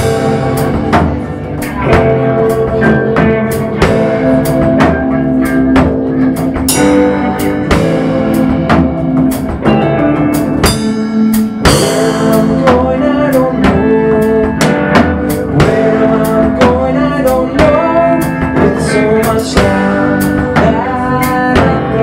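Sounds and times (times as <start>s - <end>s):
blues rock band playing: 0.0s - 22.0s.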